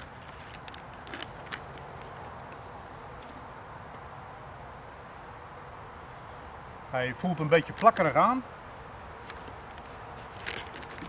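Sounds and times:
plastic packaging crinkling: 0:00.0 - 0:02.3, 0:09.3 - 0:11.0
faint outdoor hiss: 0:00.0 - 0:11.0.

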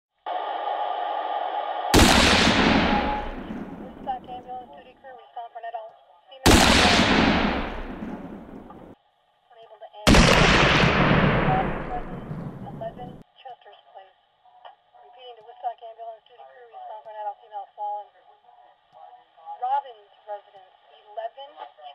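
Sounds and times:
loud booms: 0:02.0 - 0:04.6, 0:06.5 - 0:09.0, 0:10.1 - 0:13.2.

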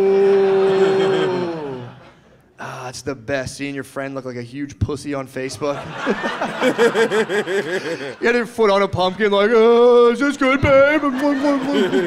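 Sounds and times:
man's drawn-out ohhh: 0:00.0 - 0:02.0.

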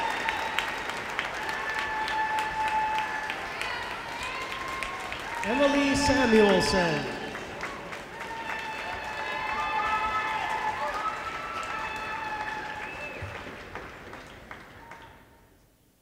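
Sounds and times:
audience applauding and cheering: 0:00.0 - 0:15.5.

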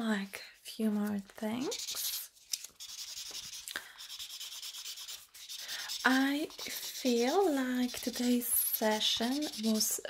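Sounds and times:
pen scratching on paper: 0:01.6 - 0:10.0.

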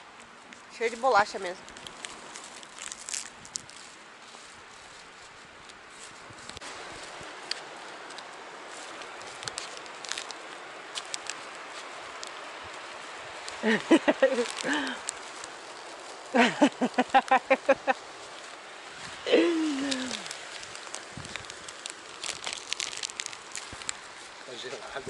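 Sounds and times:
footsteps: 0:00.0 - 0:25.0
handling clicks and rustles: 0:00.0 - 0:25.0
outdoor background hiss: 0:00.0 - 0:25.0.

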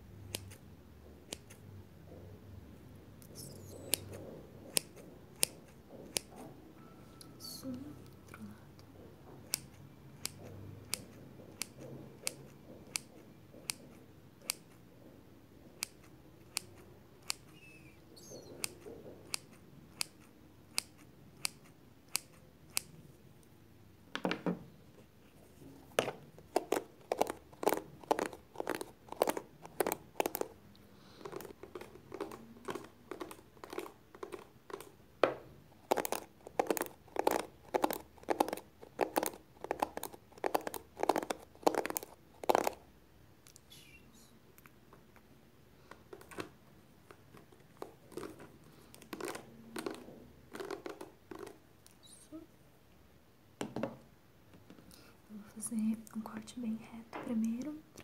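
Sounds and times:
scissors snipping: 0:00.3 - 0:00.6, 0:03.4 - 0:06.4, 0:18.4 - 0:22.9.

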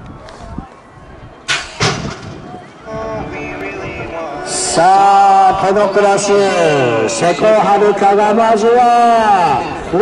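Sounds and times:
metal starting gate slamming: 0:01.5 - 0:02.5.

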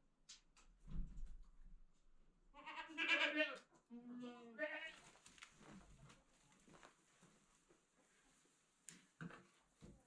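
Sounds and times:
goats bleating: 0:02.6 - 0:03.6.

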